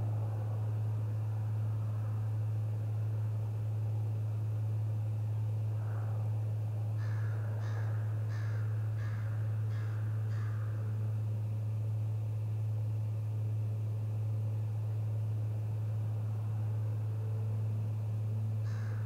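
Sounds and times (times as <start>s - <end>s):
steady low hum: 0.0s - 19.0s
bird calling: 7.0s - 11.0s, 18.6s - 19.0s.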